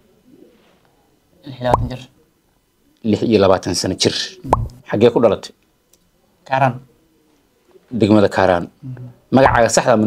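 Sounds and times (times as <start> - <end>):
man speaking: 1.5 - 2.1, 8.0 - 10.0.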